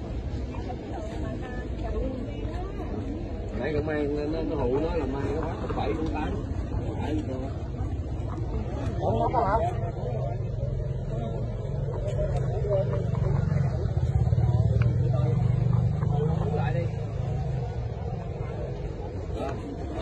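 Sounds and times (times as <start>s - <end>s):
people chatting: 0.0s - 20.0s
vehicle engine rumble passing: 9.8s - 20.0s.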